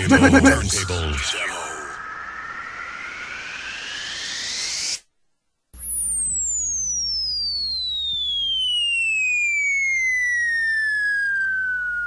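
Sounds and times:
whistle tone sliding down: 1.9s - 5.0s, 5.8s - 12.0s.

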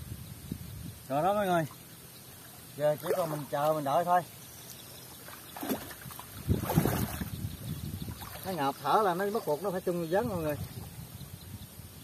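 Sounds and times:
water sloshing around wading person: 1.7s - 7.4s, 8.0s - 11.0s.

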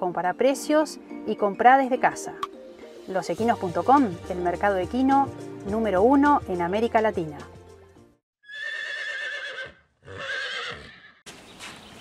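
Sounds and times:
horse whinnying: 8.4s - 11.2s.

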